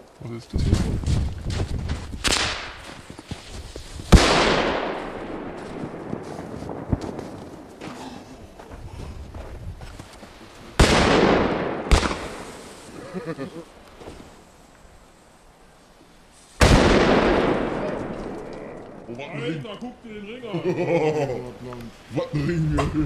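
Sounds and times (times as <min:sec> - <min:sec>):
firecrackers banging: 0:04.0 - 0:08.1, 0:10.8 - 0:13.0, 0:16.6 - 0:19.1
firecracker crackling: 0:10.2 - 0:15.4.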